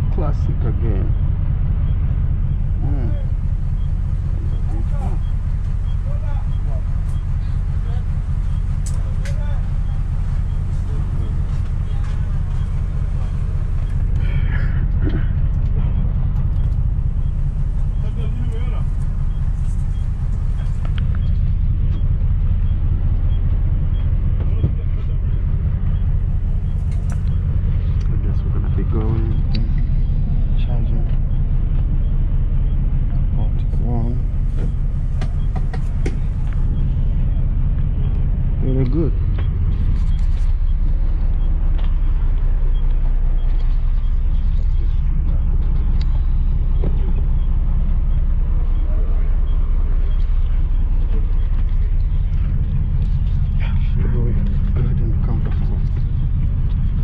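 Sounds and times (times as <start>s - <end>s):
bus engine low rumble: 0.0s - 57.0s
faint passenger voices: 0.0s - 57.0s.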